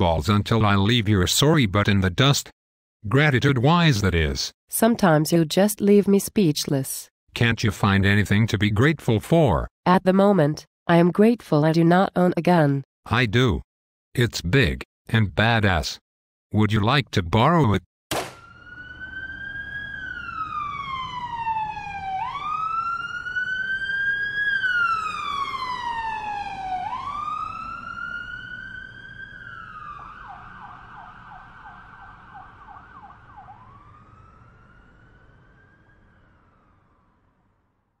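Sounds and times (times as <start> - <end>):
sharp knock: 18.1 - 18.4
emergency siren wailing and yelping: 18.4 - 37.6.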